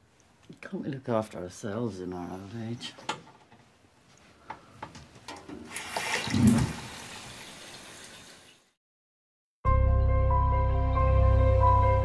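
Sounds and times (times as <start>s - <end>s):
water running from tap: 5.6s - 8.7s.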